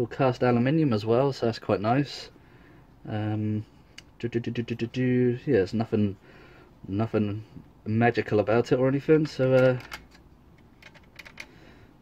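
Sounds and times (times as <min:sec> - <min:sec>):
floppy drive mechanism clicks: 0:09.2 - 0:11.6.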